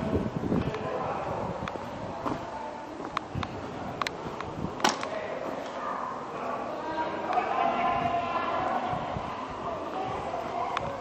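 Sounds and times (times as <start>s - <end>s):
loud crack: 4.8s - 5.2s.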